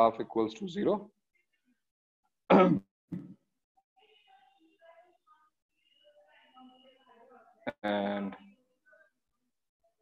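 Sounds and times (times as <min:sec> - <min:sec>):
person clearing throat: 0:02.5 - 0:03.4.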